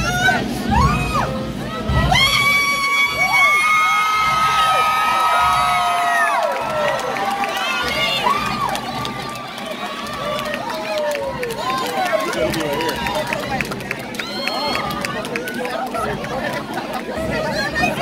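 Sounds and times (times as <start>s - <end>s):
crowd cheering and shouting: 0.0s - 18.0s.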